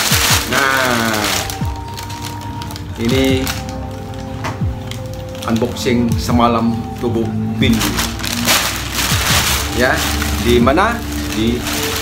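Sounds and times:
background music with held tones: 0.0 - 12.0
plastic bag crinkling: 0.0 - 12.0.

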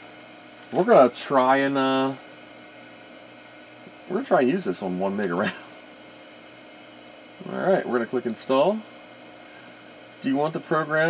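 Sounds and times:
faint background hum and hiss: 0.0 - 11.0.

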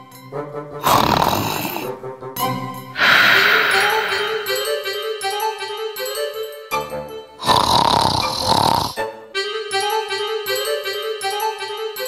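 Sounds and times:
light background music: 0.0 - 12.0
loud snore: 0.8 - 2.0, 3.0 - 4.8, 7.4 - 9.0.

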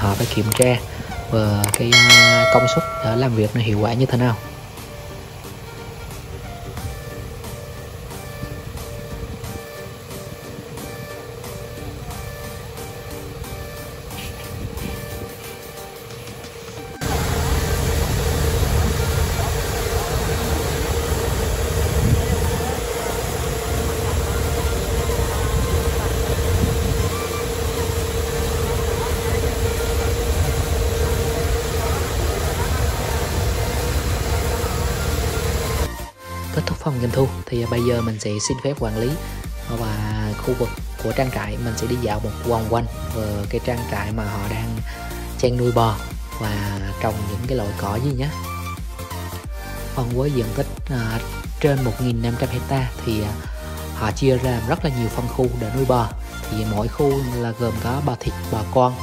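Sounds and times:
background music: 0.0 - 17.8, 35.8 - 59.0
tractor diesel engine running: 4.5 - 35.9.

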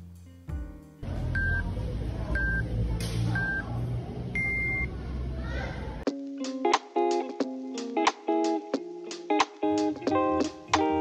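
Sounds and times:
short beeps: 4.4 - 4.9.

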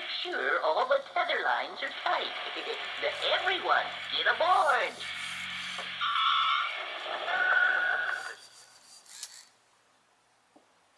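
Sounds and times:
wavering tones from toy speaker: 4.6 - 6.7.

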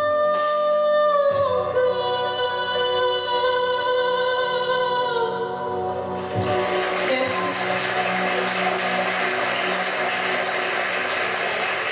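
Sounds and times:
backing music: 5.3 - 11.9
audience applause: 6.2 - 11.9.

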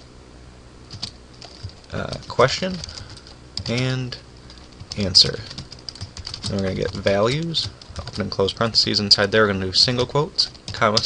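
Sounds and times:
faint keystrokes on keyboard: 0.9 - 3.9.

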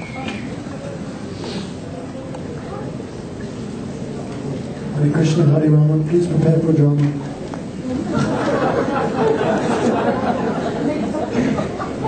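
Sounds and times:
crowd of voices chattering: 0.0 - 12.0.

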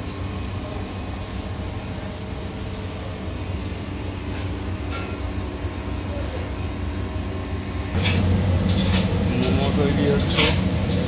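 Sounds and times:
kitchen machinery hum: 0.0 - 11.0.

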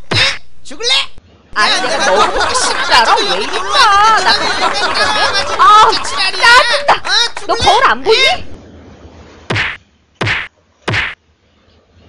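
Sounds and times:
cartoon whacking hits: 0.0 - 0.5, 9.5 - 11.2.

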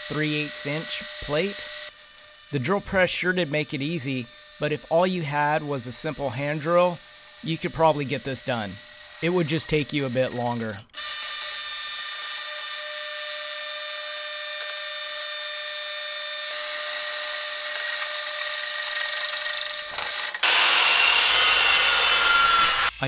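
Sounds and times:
abrasive chop saw cutting steel: 0.0 - 23.0
drill press cutting steel: 0.0 - 23.0.

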